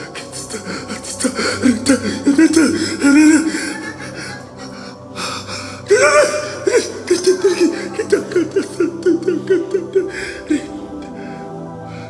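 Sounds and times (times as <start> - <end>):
man crying out: 1.0 - 5.1, 5.8 - 10.8.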